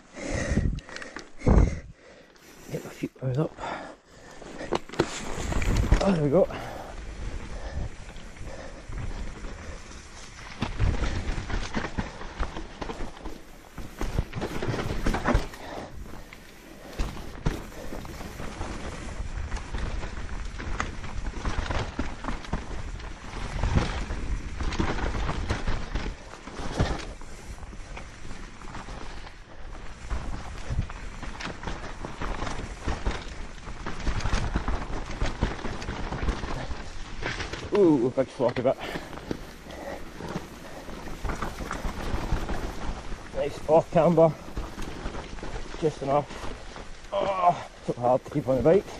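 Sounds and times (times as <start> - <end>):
bike tyres rolling and skidding on dirt: 0.0 - 48.9
bike rattling and clunking: 3.3 - 48.9.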